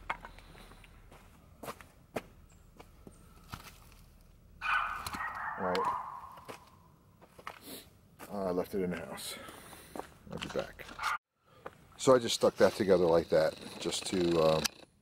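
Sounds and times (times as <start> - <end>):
footsteps on leaves and gravel: 0.5 - 11.8.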